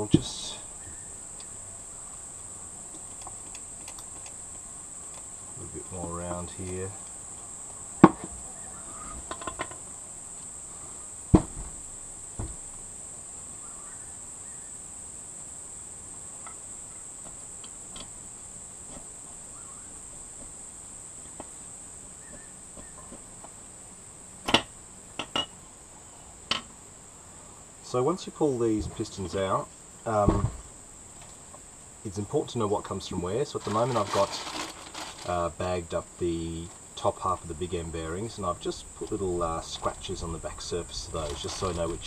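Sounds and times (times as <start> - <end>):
crickets chirping drone: 0.0 - 42.0
metal knocks and clunks: 30.2 - 30.7.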